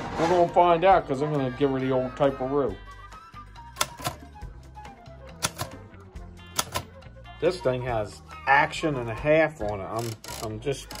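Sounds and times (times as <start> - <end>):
faint background music: 0.0 - 11.0
typewriter keystrokes: 5.4 - 5.8, 6.6 - 6.9.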